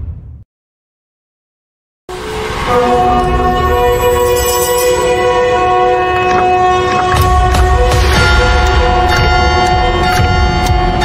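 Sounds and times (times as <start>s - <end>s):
sustained horn-like chord: 2.1s - 11.0s.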